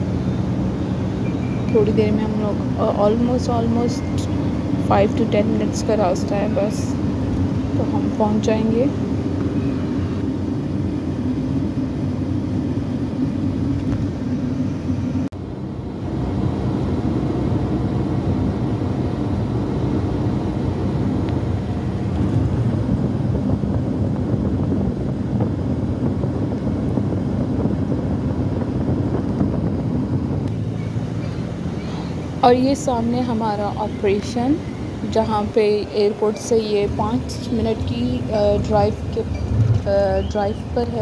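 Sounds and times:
car road and engine noise: 0.0s - 41.0s.

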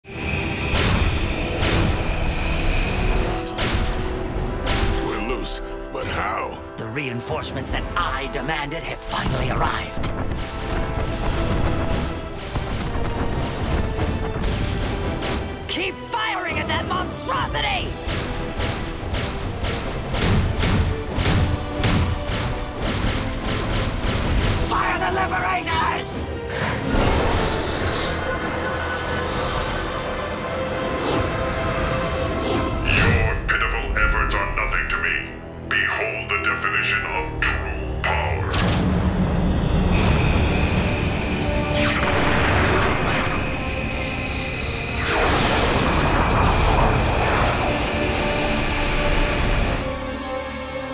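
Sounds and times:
dramatic music score: 0.0s - 50.9s
jet-like rushing roar: 26.3s - 33.0s, 38.9s - 50.3s.

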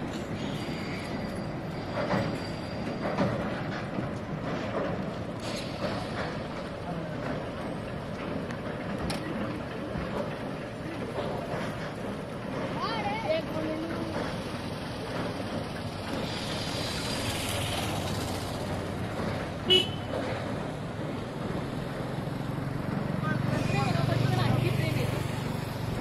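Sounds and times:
road traffic: 0.0s - 26.0s.

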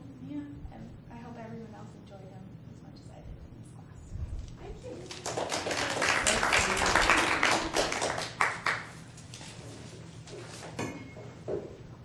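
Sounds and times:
audience applause: 5.0s - 9.0s.

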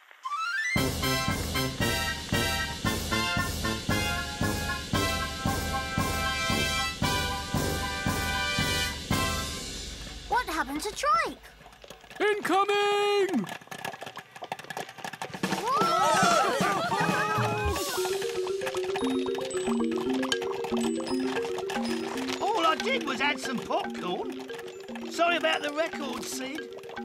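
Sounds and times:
marching band music: 0.8s - 11.2s, 15.7s - 27.0s
cartoon sound effects: 15.6s - 18.3s.

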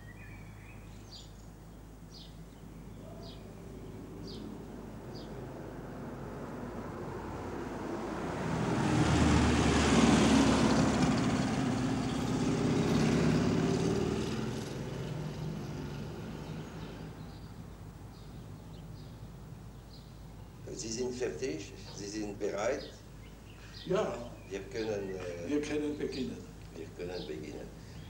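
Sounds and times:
bird chirps: 0.0s - 5.4s, 16.6s - 28.0s
vehicle driving past: 3.2s - 17.6s.

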